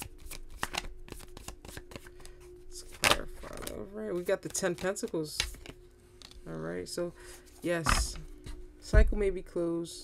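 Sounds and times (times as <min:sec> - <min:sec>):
cards being shuffled: 0:00.0 - 0:06.5.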